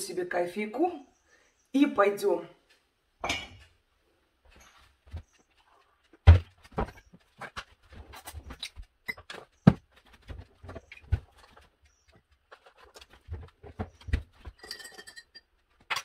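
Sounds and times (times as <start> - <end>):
cups and kitchen items clinking: 3.2 - 3.8, 14.1 - 16.0.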